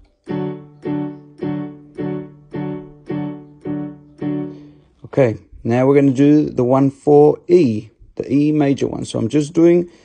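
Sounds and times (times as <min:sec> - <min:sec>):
keyboard piano chords: 0:00.0 - 0:05.4.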